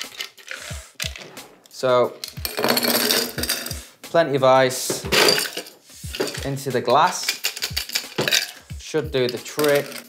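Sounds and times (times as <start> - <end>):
ice cubes clinking in glass: 5.2 - 6.4, 7.2 - 8.6, 9.3 - 10.0.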